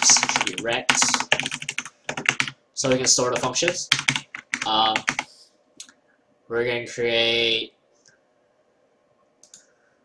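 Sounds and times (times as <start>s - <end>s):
faint click: 9.4s - 9.7s.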